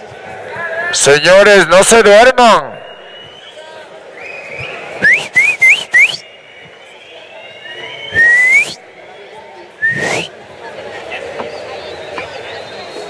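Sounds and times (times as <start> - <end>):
low crowd murmur: 0.0 - 2.0, 2.6 - 13.0
crowd whistling: 2.4 - 10.4, 11.4 - 13.0.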